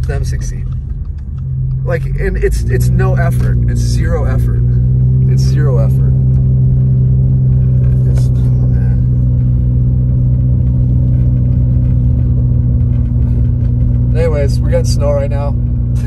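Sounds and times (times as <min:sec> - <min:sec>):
car engine and tyres drone: 0:00.0 - 0:16.0.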